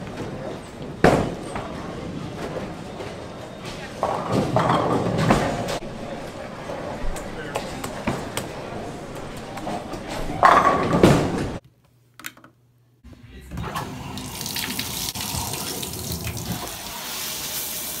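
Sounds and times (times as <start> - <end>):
bowling alley din: 0.0 - 11.6
bowling ball crashing into pins: 4.0 - 5.8, 10.3 - 11.6
shower spraying water: 14.0 - 18.0.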